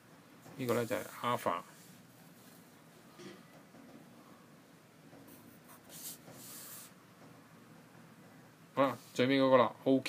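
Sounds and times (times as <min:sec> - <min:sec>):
pencil scratching on paper: 0:05.2 - 0:07.0.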